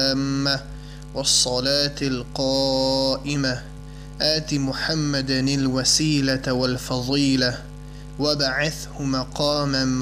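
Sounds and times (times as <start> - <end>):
low mains hum: 0.0 - 10.0.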